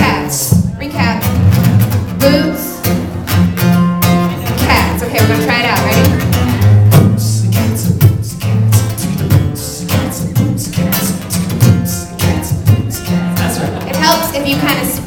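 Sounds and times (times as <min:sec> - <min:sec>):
acoustic guitar low notes: 0:00.0 - 0:15.0
person beatboxing: 0:04.5 - 0:15.0.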